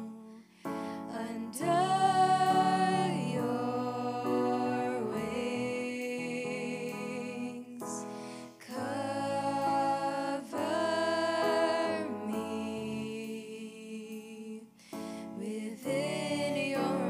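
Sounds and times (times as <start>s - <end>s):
sustained keyboard chords: 0.0s - 17.0s
women singing worship song: 0.0s - 17.0s.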